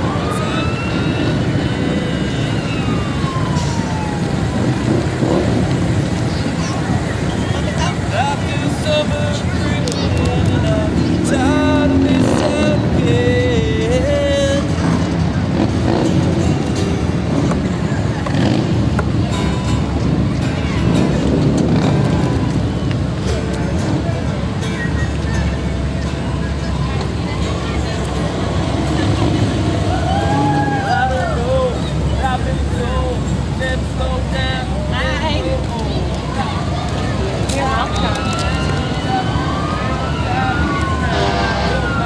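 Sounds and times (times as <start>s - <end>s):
cars and trucks passing slowly: 0.0s - 42.0s
people chattering: 0.0s - 42.0s.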